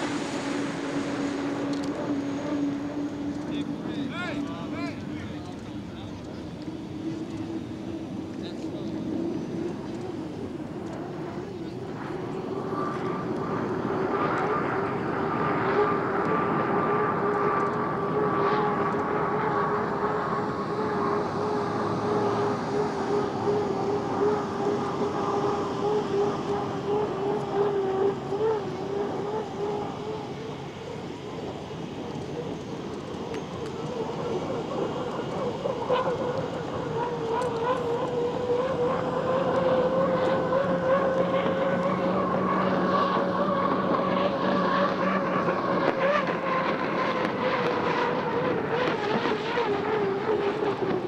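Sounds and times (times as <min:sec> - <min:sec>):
boat turbine engine whine: 0:00.0 - 0:51.0.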